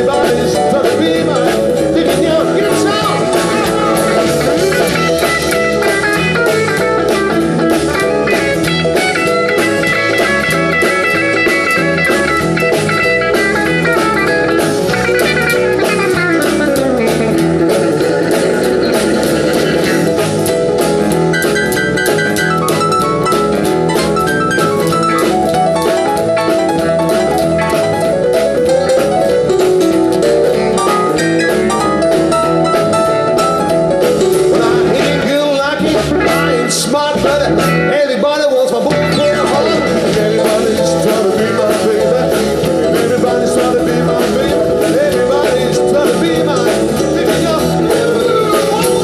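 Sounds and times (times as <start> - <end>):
live country-folk band playing: 0.0 - 49.0.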